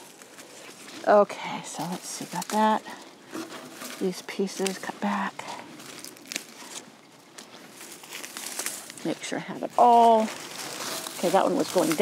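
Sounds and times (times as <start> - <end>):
dry stems and leaves rustling: 0.0 - 12.0
stems snapping: 1.7 - 5.2, 5.8 - 9.1, 9.9 - 12.0.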